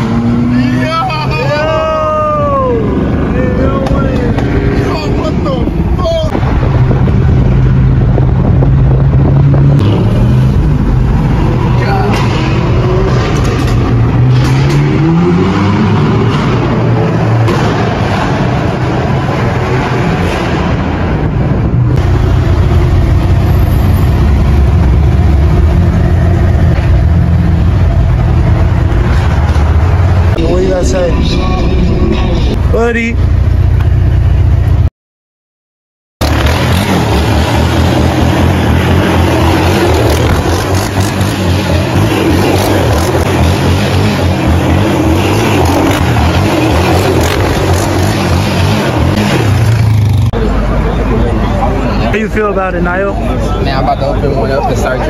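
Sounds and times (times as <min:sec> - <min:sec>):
car engine accelerating: 0:00.0 - 0:32.6.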